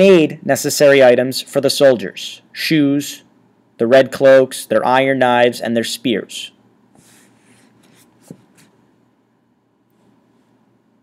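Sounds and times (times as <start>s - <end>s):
faint scratching strokes: 7.0s - 8.8s.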